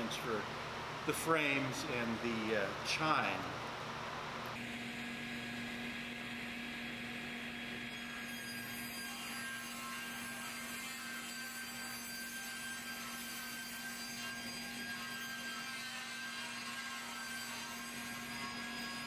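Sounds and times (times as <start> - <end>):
woodshop machinery humming: 0.0 - 19.0.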